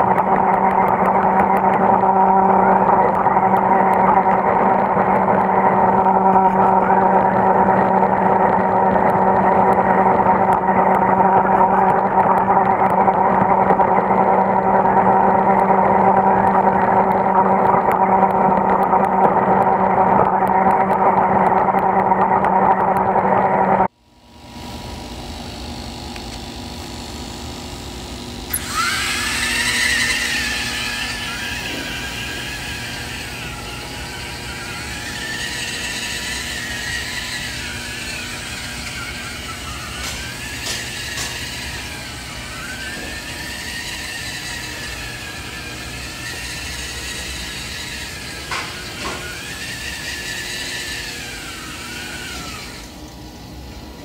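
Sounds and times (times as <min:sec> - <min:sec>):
high motor whine wavering: 0:00.0 - 0:54.0
toy car motors humming: 0:00.0 - 0:54.0.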